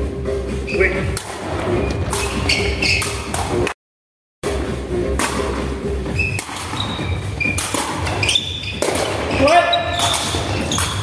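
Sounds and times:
ball being hit: 0:05.1 - 0:05.6, 0:07.5 - 0:08.1, 0:08.7 - 0:11.0.

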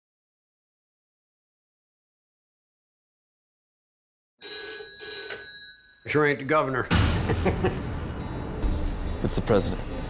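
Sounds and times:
telephone bell ringing: 0:04.4 - 0:06.3.

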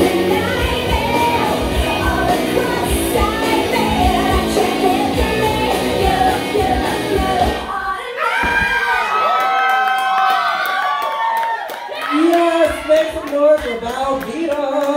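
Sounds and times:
rock song over sound system: 0:00.0 - 0:07.7
audience cheering and whooping: 0:08.1 - 0:13.4.

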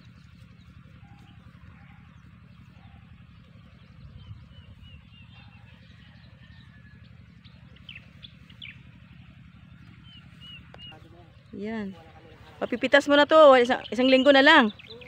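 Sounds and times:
low steady rumble: 0:00.0 - 0:15.0
small birds chirping: 0:00.0 - 0:15.0.

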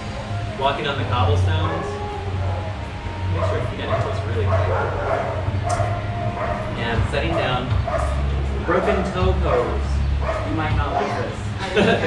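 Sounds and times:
steady low hum: 0:00.0 - 0:12.0
dog whining and yipping: 0:01.6 - 0:08.2.

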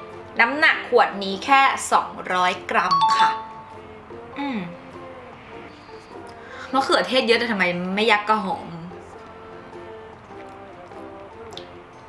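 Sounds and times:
soft background music: 0:00.0 - 0:12.0
bright chime: 0:02.9 - 0:03.8.

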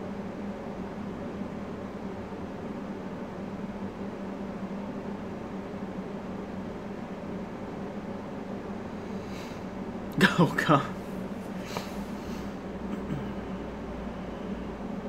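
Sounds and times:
low constant hum: 0:00.0 - 0:15.0.

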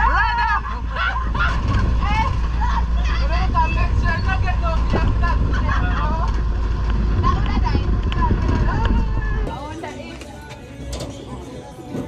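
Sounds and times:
passengers' voices: 0:00.0 - 0:12.0
truck driving on dirt road: 0:00.0 - 0:12.0.

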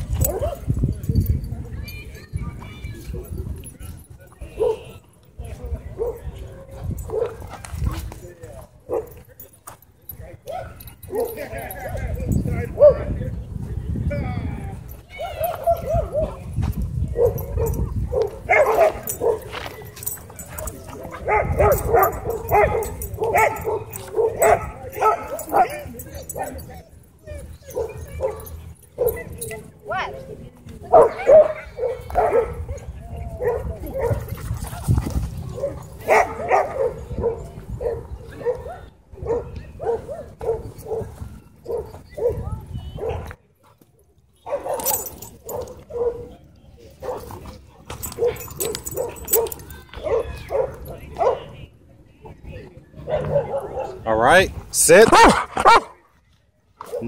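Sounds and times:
dogs barking and yipping: 0:00.0 - 0:01.2, 0:03.0 - 0:05.0, 0:05.9 - 0:08.0, 0:08.8 - 0:09.2, 0:10.4 - 0:13.2, 0:14.9 - 0:43.4, 0:44.4 - 0:51.6, 0:53.0 - 0:54.2, 0:54.8 - 0:56.0.

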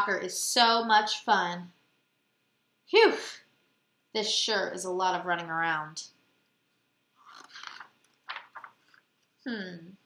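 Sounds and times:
book page turning rustle: 0:07.2 - 0:09.4.

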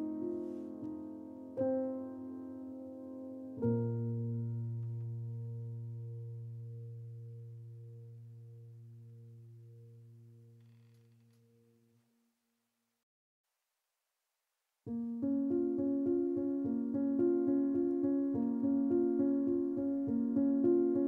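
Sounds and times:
low piano chord: 0:00.0 - 0:10.6, 0:14.9 - 0:21.0.

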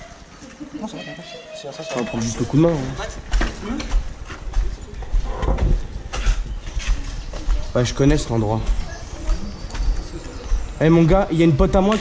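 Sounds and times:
man talking: 0:01.8 - 0:03.1, 0:07.8 - 0:08.7.

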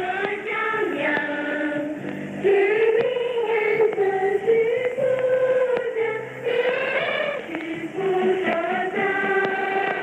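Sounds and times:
choir singing long held notes: 0:00.0 - 0:10.0
faint static clicks: 0:00.0 - 0:10.0.

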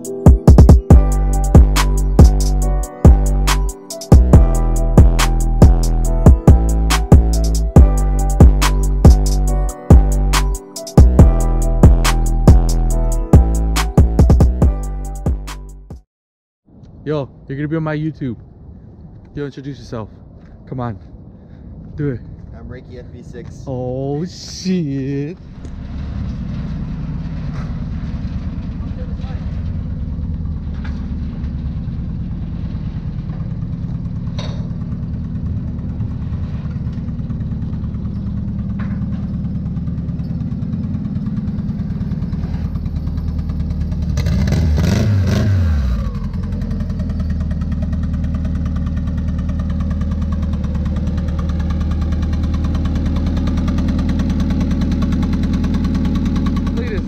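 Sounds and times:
car engine idling and revving: 0:00.0 - 0:15.9, 0:24.2 - 0:57.0.

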